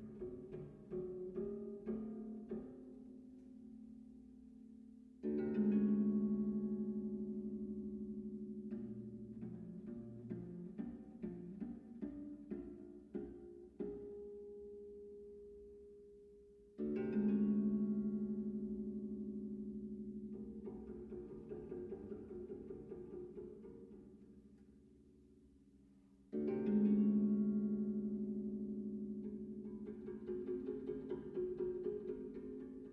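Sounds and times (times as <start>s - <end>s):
bass zither playing: 5.1s - 32.9s.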